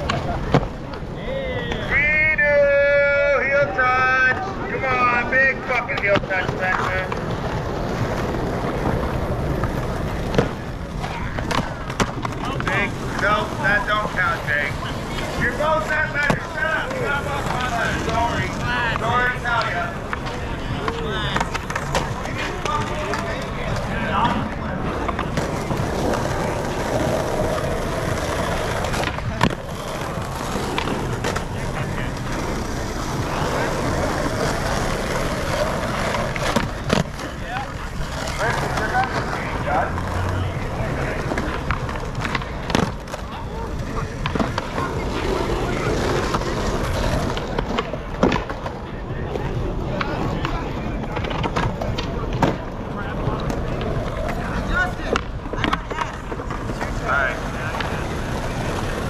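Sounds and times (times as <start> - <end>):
skateboard clacks on ground: 0.0 - 2.0, 4.3 - 59.0
skateboard wheels rolling on asphalt: 0.0 - 59.0.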